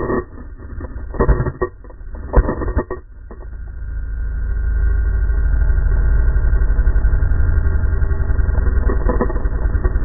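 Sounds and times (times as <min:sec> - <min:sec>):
short clatter: 0:00.0 - 0:03.5, 0:08.6 - 0:10.0
two-stroke motorcycle engine running: 0:00.0 - 0:10.0.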